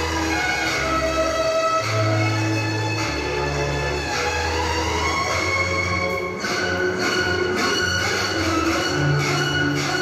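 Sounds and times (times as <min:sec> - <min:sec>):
instrumental music with held notes: 0:00.0 - 0:10.0.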